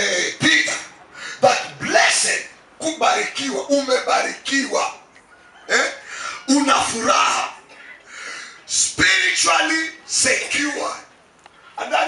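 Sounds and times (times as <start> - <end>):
man speaking: 0.0 - 5.0, 5.7 - 7.6, 8.7 - 11.1, 11.8 - 12.0.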